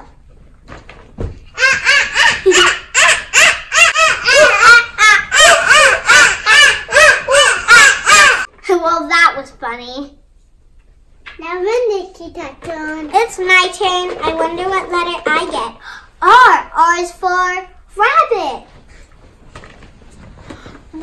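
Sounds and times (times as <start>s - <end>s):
children imitating monkey calls: 1.6s - 8.5s.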